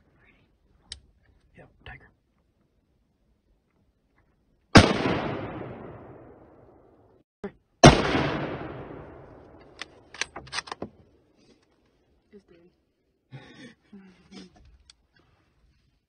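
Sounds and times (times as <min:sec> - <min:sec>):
gunshots echoing: 0:04.7 - 0:06.9, 0:07.8 - 0:10.8.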